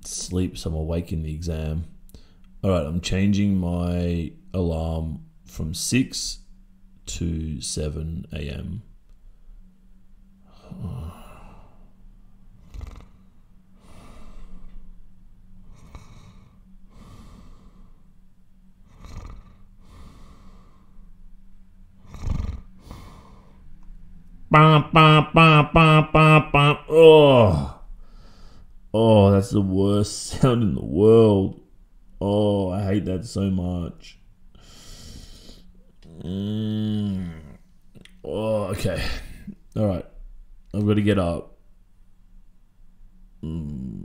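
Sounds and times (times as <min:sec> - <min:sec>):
man sighing: 0:10.5 - 0:12.0, 0:24.5 - 0:28.6, 0:34.6 - 0:39.6, 0:43.4 - 0:44.0
man breathing heavily: 0:10.5 - 0:15.0, 0:15.6 - 0:21.2, 0:22.0 - 0:23.8, 0:27.7 - 0:28.8, 0:34.5 - 0:37.7.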